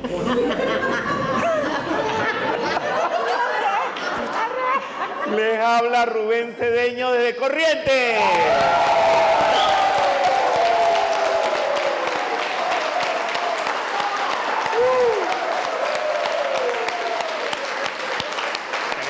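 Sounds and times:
audience cheering: 0:08.1 - 0:19.0
audience clapping: 0:08.2 - 0:19.0.

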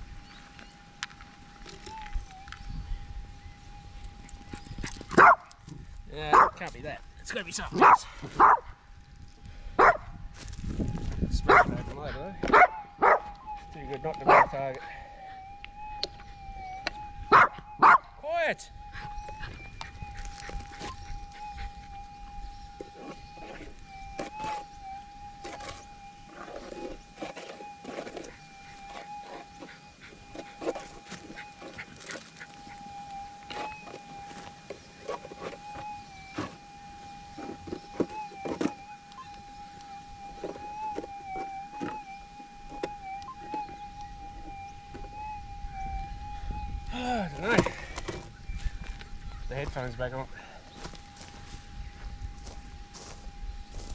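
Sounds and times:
metal detector threshold tone: 0:10.8 - 0:53.9.

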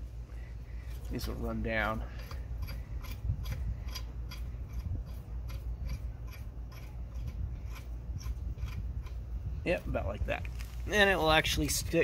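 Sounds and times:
bolt threads clicking and scraping: 0:00.8 - 0:09.2.

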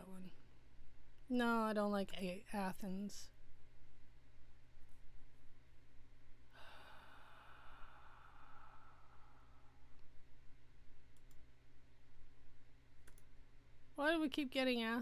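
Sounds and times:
woman sighing: 0:06.5 - 0:09.7
computer mouse clicks: 0:11.1 - 0:11.5, 0:13.0 - 0:13.3.

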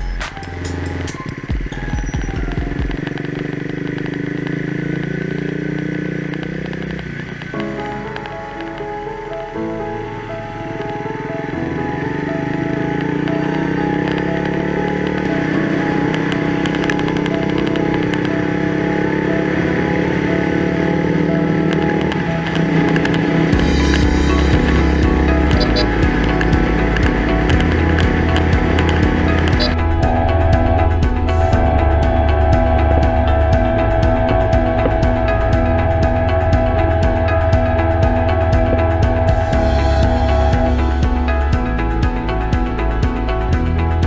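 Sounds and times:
background music melody: 0:00.0 - 0:44.0
motorcycle engine running: 0:00.0 - 0:44.0.

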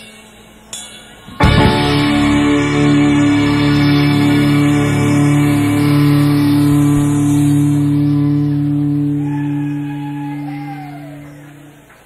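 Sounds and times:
faint bending guitar note: 0:01.4 - 0:12.0
rock band sustained chord: 0:01.4 - 0:12.0.

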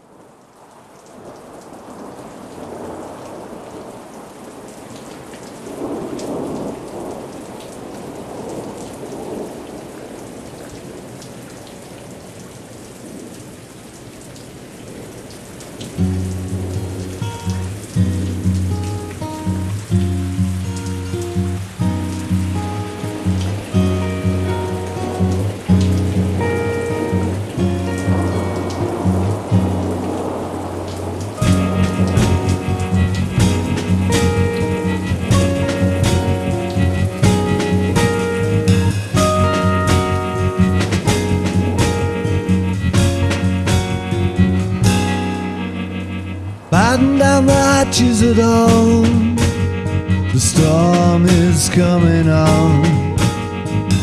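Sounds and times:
steady rain: 0:00.0 - 0:54.0
rolling thunder: 0:01.2 - 0:11.2, 0:15.8 - 0:54.0
acoustic music with low notes: 0:16.0 - 0:30.4, 0:31.1 - 0:54.0.

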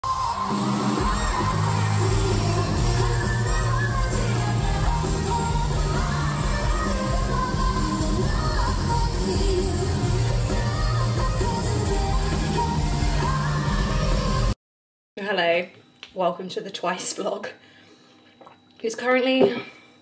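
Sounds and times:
crowd cheering: 0:00.0 - 0:04.8
women singing pop music: 0:00.0 - 0:14.6.

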